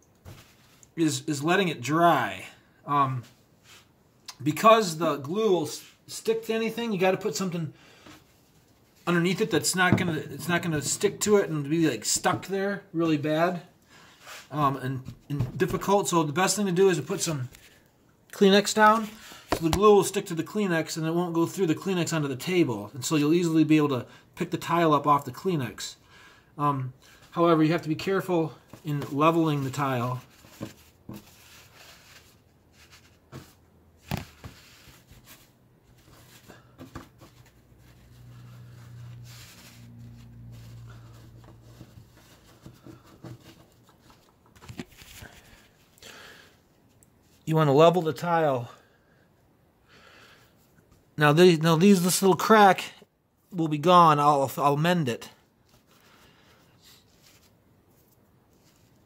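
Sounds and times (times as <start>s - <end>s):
soft handling noises: 0.0s - 1.0s, 17.0s - 19.9s, 27.0s - 47.5s, 55.4s - 59.0s
soft rustles of tissue: 0.2s - 1.0s, 2.5s - 4.2s, 5.6s - 9.7s, 13.7s - 15.3s, 27.0s - 47.5s, 55.4s - 59.0s.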